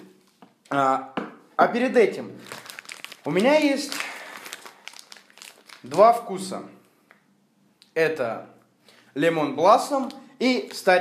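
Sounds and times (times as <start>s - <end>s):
plastic wrap crinkling: 2.4s - 6.4s.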